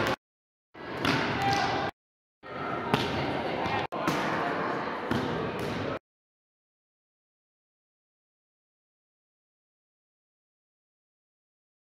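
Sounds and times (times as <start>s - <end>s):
volleyballs hit and bouncing: 0.8s - 1.9s, 2.8s - 6.0s.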